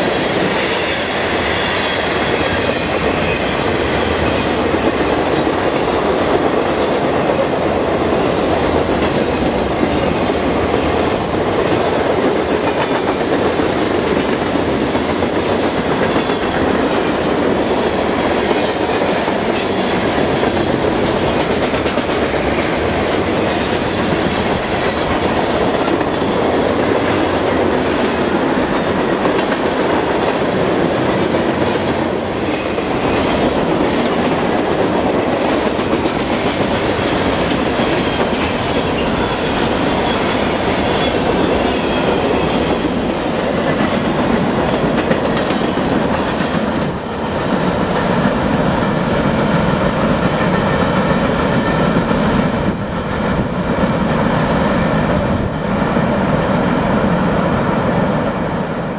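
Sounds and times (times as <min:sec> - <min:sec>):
train wheels rumbling on rail: 0:00.0 - 0:58.9.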